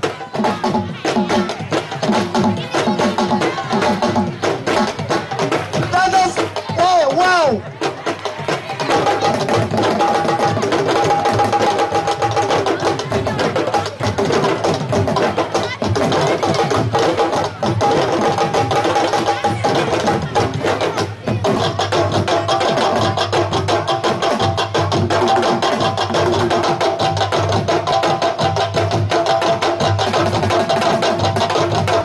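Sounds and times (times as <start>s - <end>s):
drum ensemble playing fast rhythm: 0.0s - 32.0s.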